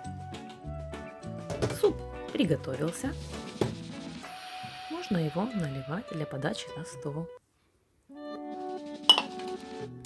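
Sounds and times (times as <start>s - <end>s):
background music: 0.0s - 7.4s, 8.1s - 10.0s.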